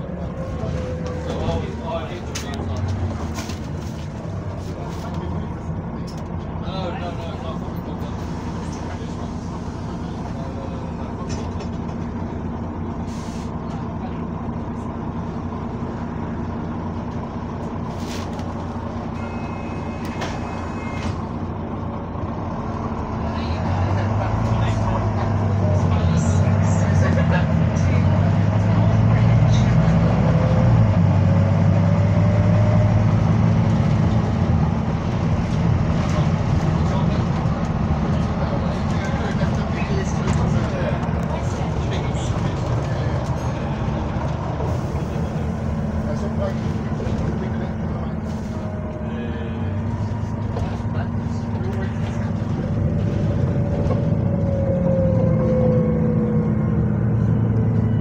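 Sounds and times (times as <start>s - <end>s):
diesel bus engine: 0.0s - 58.0s.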